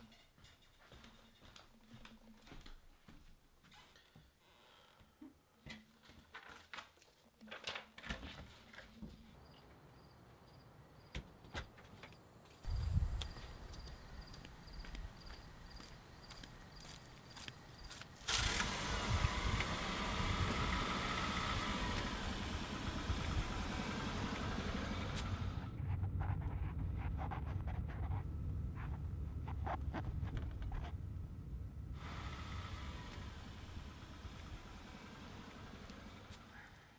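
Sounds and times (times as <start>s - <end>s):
car engine starting: 18.2s - 36.6s
car driving heard from inside: 19.4s - 36.6s.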